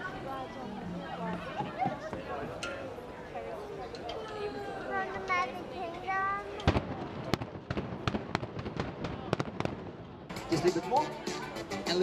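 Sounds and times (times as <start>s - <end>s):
fireworks bangs and crackles: 6.6s - 10.6s.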